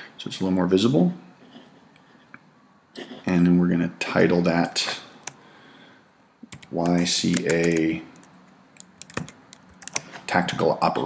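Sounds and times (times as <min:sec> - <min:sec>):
computer keyboard key clicks: 0:06.5 - 0:10.0.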